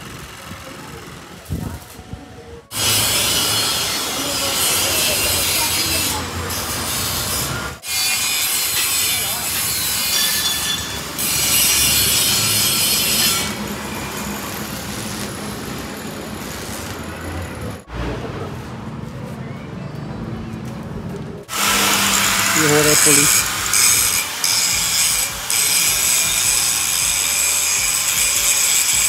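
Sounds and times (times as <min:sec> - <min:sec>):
steel tube being cut: 0:02.7 - 0:17.1, 0:21.5 - 0:29.0
arc welding crackle and hiss: 0:02.7 - 0:17.3, 0:21.5 - 0:29.0.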